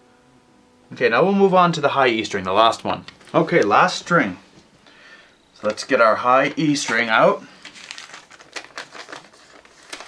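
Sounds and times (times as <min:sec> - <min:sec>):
string packet crinkling: 0:05.6 - 0:10.0.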